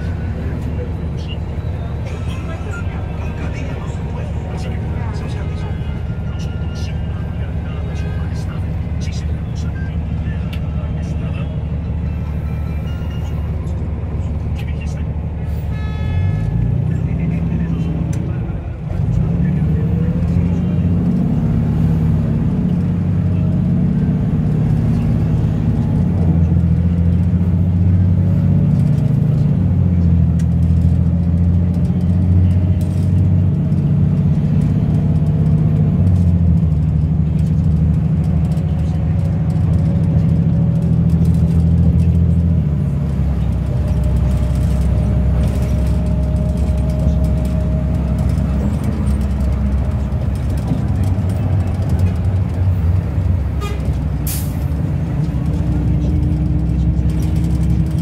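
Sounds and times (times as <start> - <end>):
bus engine drone: 0.0 - 58.0.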